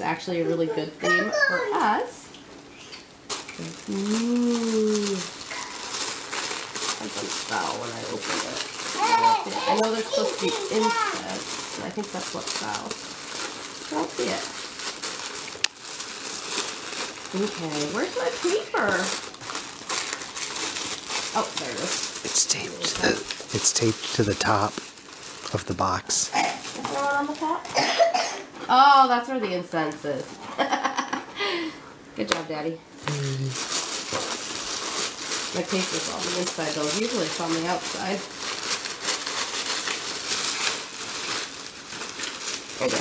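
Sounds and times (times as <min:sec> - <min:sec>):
tissue paper crinkling: 0:03.3 - 0:27.7, 0:33.5 - 0:43.0.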